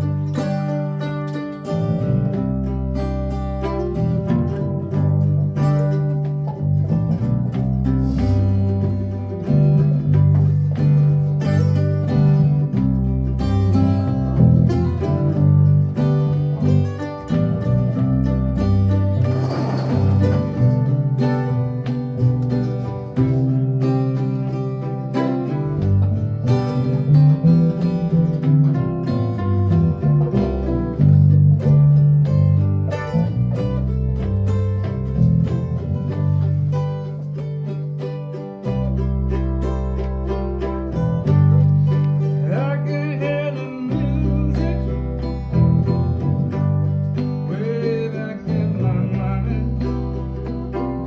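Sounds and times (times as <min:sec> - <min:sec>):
acoustic guitars: 0:00.0 - 0:51.0
bass line: 0:00.0 - 0:51.0
mandolin: 0:00.0 - 0:51.0.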